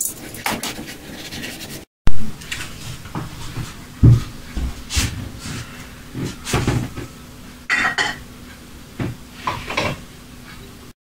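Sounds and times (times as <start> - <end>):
glass clinking: 7.7 - 8.2.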